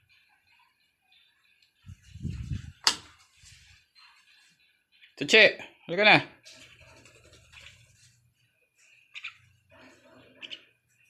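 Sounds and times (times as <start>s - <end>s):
soft low bird sound: 0.0s - 5.2s, 6.4s - 11.0s
bird calls: 6.4s - 11.0s.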